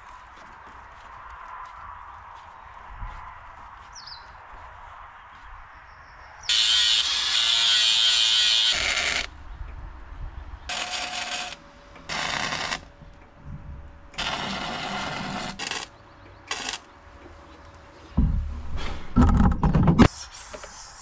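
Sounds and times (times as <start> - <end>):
arc welding crackling: 6.5 - 9.3, 10.7 - 13.2, 14.1 - 16.9.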